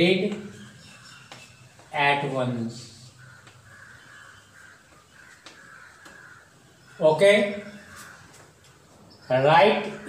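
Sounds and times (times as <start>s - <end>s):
faint bird calls: 0.0s - 10.0s.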